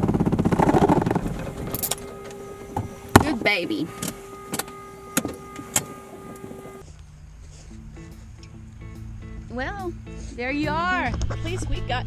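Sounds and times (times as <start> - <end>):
low rumble: 0.0 - 7.5
steady whine in cockpit: 0.0 - 8.0
faint music: 6.3 - 12.0.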